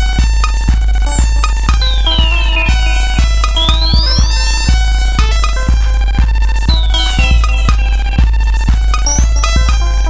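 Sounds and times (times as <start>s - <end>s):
synthesizer electronic music: 0.0s - 10.0s
deep bass: 0.7s - 9.8s
high tones sweeping up: 1.1s - 4.7s, 6.7s - 8.6s.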